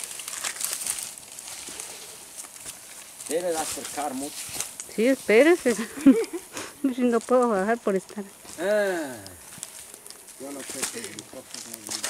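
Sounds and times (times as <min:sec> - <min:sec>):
footsteps in leaf litter: 0:00.0 - 0:12.0
leaves brushing: 0:00.0 - 0:12.0.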